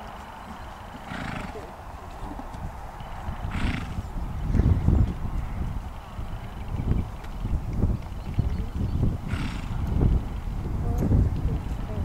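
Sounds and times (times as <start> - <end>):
pony moving across arena: 0.0 - 12.0
pony snorting: 1.0 - 2.5, 3.4 - 4.1, 9.2 - 9.8.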